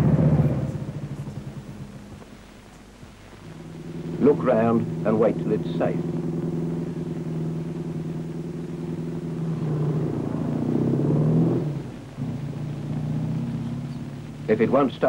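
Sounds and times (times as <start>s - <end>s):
motorcycle engine revving: 0.0s - 15.0s.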